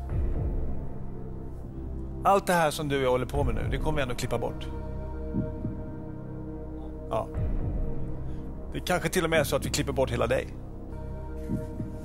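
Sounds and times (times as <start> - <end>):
low tension music drone: 0.0 - 12.0.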